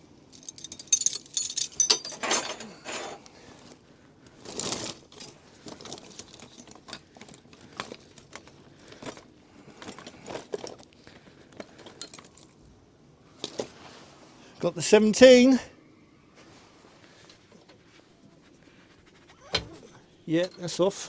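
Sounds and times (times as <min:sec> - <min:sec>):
metal tools clinking in a bag: 0:00.3 - 0:03.3, 0:04.4 - 0:10.9, 0:11.5 - 0:12.6, 0:19.4 - 0:20.8.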